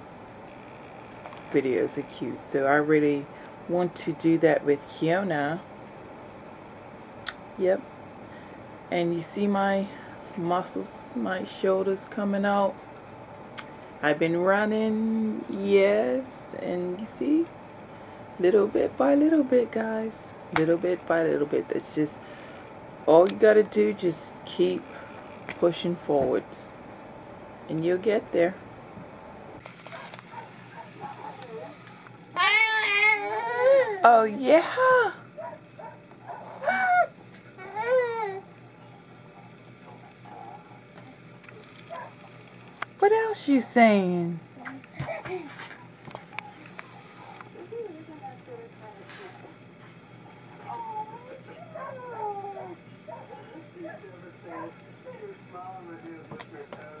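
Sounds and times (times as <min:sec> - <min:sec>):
baby cooing: 0:32.4 - 0:34.0, 0:36.6 - 0:38.5, 0:50.6 - 0:52.8.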